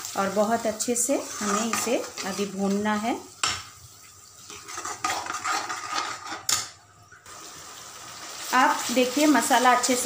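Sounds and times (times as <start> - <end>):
spatula scraping frying masala: 0.0 - 10.0.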